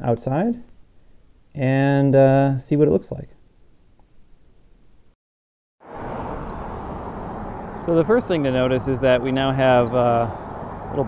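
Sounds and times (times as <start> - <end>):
road traffic rushing: 5.8 - 11.0.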